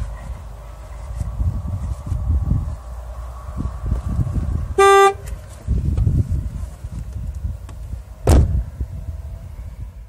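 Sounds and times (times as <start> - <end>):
low rumbling noise: 0.0 - 10.0
car horn toot: 4.8 - 5.3.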